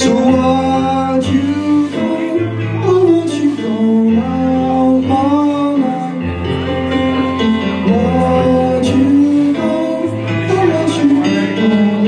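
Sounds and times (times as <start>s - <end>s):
guitar: 0.0s - 12.0s
man singing: 0.0s - 12.0s.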